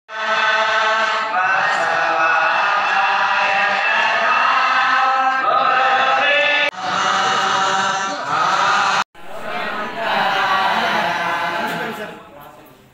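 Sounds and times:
men chanting a prayer: 0:00.1 - 0:12.6.

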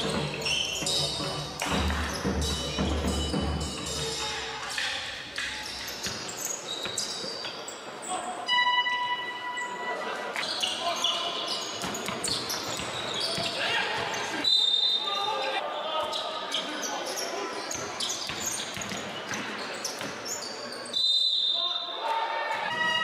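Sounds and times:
sneaker squeaks on gym floor: 0:00.0 - 0:04.2, 0:04.9 - 0:09.7, 0:10.4 - 0:15.2, 0:16.0 - 0:21.7
voices echoing in hall: 0:00.0 - 0:23.0.

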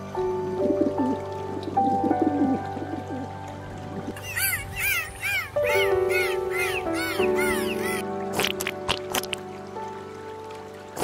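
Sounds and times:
background music with held notes: 0:00.0 - 0:11.0
dolphin squeaking: 0:04.2 - 0:08.0.

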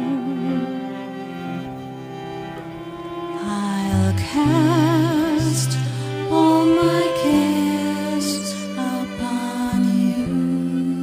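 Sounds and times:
person singing: 0:00.0 - 0:01.5, 0:03.1 - 0:11.0
low held string notes: 0:00.0 - 0:11.0
violin: 0:00.0 - 0:11.0.

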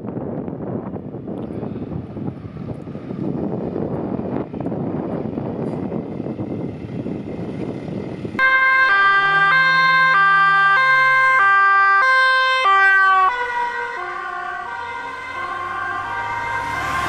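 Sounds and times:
wind and road rumble: 0:00.0 - 0:17.0
two-tone police siren: 0:08.4 - 0:17.0.

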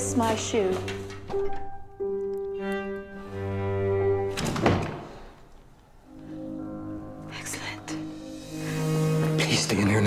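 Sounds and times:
dramatic orchestral strings: 0:06.4 - 0:10.0.

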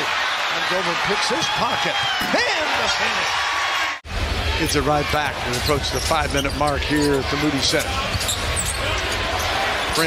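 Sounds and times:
arena crowd roar: 0:00.0 - 0:10.0.

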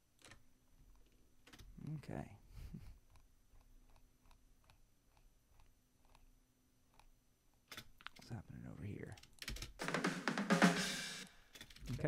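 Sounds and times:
snare drum hit: 0:09.8 - 0:11.2.

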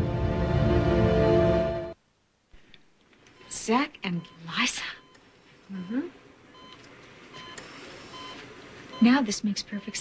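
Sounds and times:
faint room hiss: 0:00.0 - 0:10.0
hospital monitor beeping: 0:03.3 - 0:10.0.

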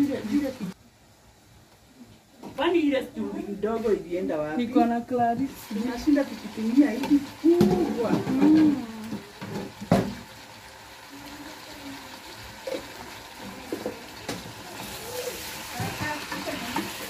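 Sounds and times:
chicken sizzling in a pot: 0:00.0 - 0:02.0, 0:02.6 - 0:17.0.

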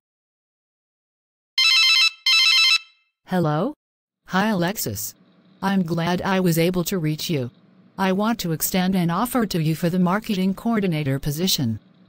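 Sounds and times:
phone ringing electronic trill: 0:01.6 - 0:03.0.

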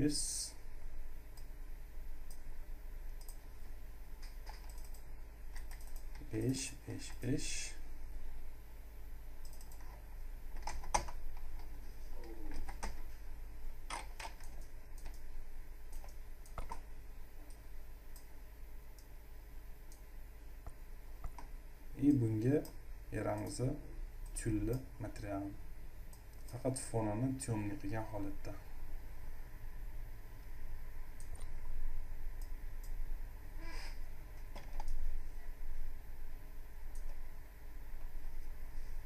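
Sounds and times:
steady low hum: 0:00.0 - 0:39.0
computer mouse clicks: 0:03.2 - 0:03.4, 0:04.2 - 0:07.2, 0:09.4 - 0:13.1, 0:13.9 - 0:15.3, 0:15.9 - 0:16.8, 0:17.4 - 0:18.3, 0:20.6 - 0:21.5, 0:34.4 - 0:35.1, 0:36.9 - 0:37.2
mouse and keyboard clicks: 0:15.9 - 0:16.8, 0:34.4 - 0:35.0.

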